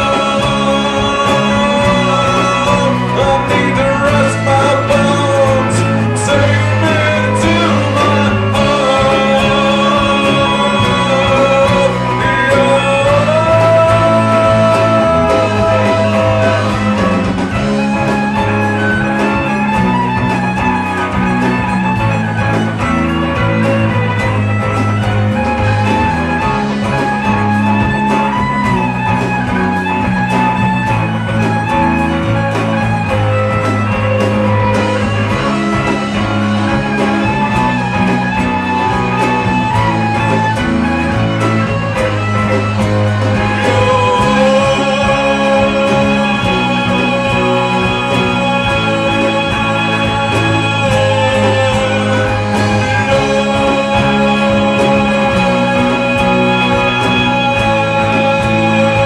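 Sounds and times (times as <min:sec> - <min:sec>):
country rock band playing: 0:00.0 - 0:59.0
fiddle: 0:00.0 - 0:59.0.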